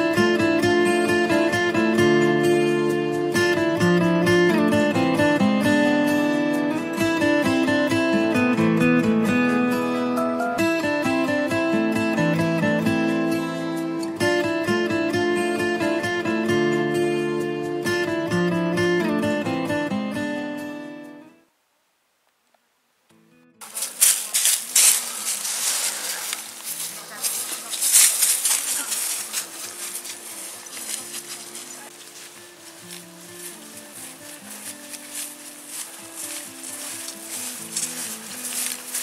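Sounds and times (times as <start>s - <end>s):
acoustic guitar music: 0.0s - 21.5s, 23.1s - 39.0s
faint voices: 23.6s - 39.0s
footsteps crunching on frosty grass: 23.6s - 39.0s.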